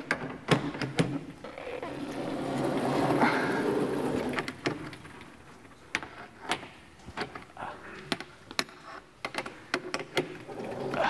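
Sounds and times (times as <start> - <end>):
heavy chalkboard panel sliding: 1.8 - 4.6.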